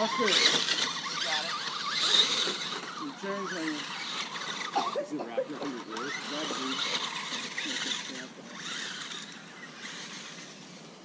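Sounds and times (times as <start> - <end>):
small electric motor whining: 0.0 - 11.0.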